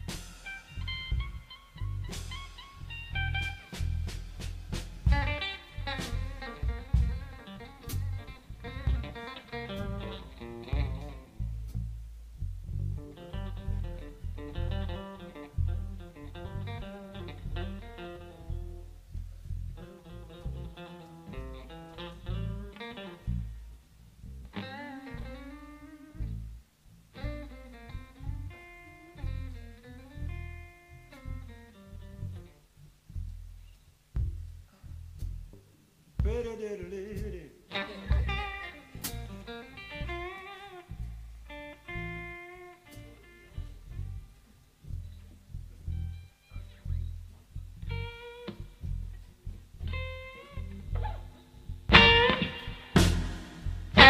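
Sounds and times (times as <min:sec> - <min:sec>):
band backing: 0:00.0 - 0:54.0
blues lead guitar: 0:00.0 - 0:54.0.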